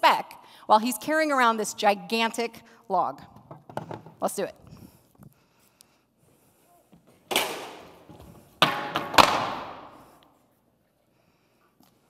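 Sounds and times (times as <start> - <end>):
wooden boards crashing onto stage: 8.6 - 9.8.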